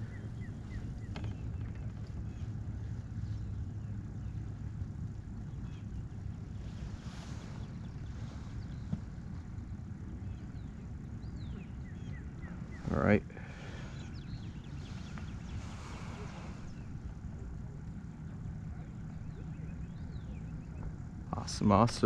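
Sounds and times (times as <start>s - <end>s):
steady low rumble: 0.0s - 22.0s
faint hiss: 12.6s - 19.0s.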